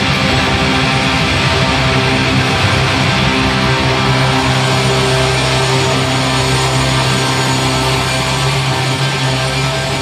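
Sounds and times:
rock band sustained chord: 0.0 - 10.0.

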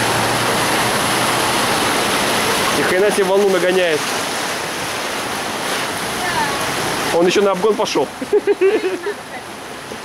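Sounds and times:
floodwater rushing and sloshing: 0.0 - 10.0.

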